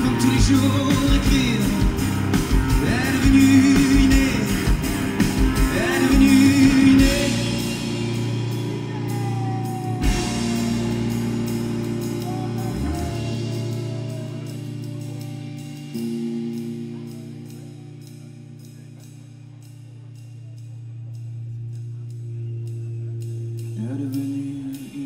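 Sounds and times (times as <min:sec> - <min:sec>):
drum kit: 0:00.0 - 0:19.0
person singing: 0:00.0 - 0:19.0, 0:22.4 - 0:25.0
electric guitars: 0:00.0 - 0:19.4
bass guitar: 0:00.0 - 0:25.0.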